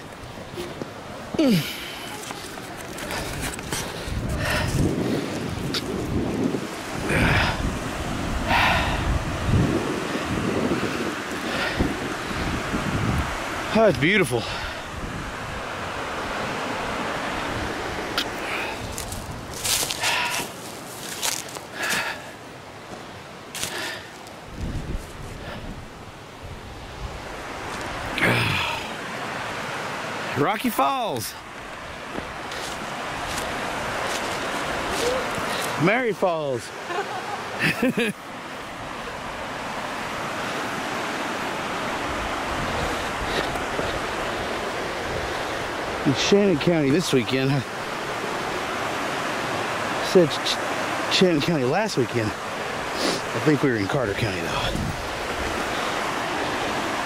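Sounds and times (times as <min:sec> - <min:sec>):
waterfall rushing: 0:00.0 - 0:24.5, 0:25.3 - 0:57.0
wind rumble on microphone: 0:03.0 - 0:18.1, 0:24.4 - 0:28.8, 0:41.9 - 0:46.1, 0:54.5 - 0:57.0
footsteps crunching dry leaves: 0:18.5 - 0:22.1, 0:23.6 - 0:24.2, 0:32.5 - 0:35.8.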